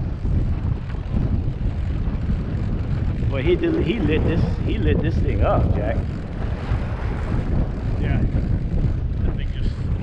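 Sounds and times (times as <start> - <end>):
outboard motors running: 0.0 - 10.0
water moving past hull: 0.0 - 10.0
wind buffeting microphone: 0.0 - 10.0.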